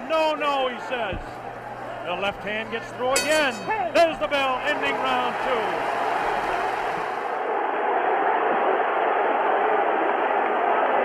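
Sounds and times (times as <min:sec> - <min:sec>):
stadium crowd roaring: 0:00.0 - 0:11.0.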